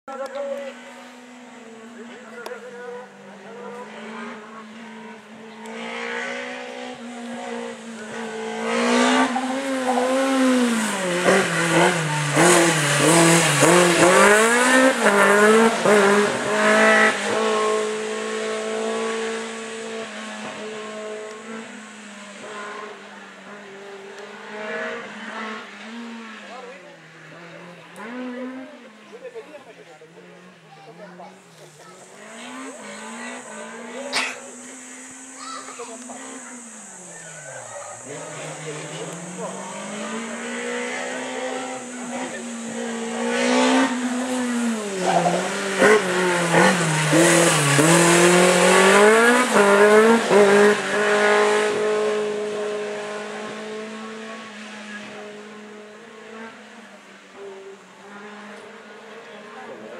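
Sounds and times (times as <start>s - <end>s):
race car engine revving: 0.0s - 59.9s.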